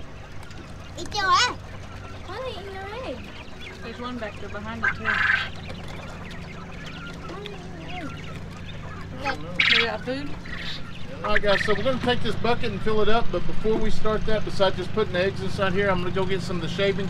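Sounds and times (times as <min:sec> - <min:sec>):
quail calling: 0:00.0 - 0:17.0.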